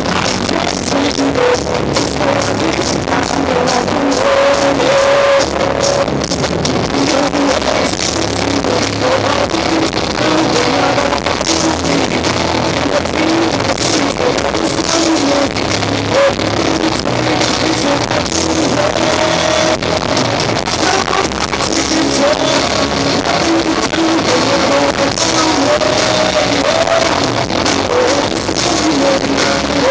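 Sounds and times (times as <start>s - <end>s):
drums: 0.0s - 29.9s
electric guitars: 0.0s - 29.9s
singer holding vocal lines: 0.0s - 29.9s.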